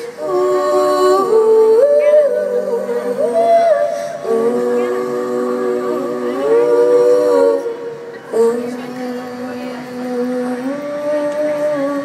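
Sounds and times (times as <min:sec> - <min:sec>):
women singing wordless chord: 0:00.0 - 0:12.0.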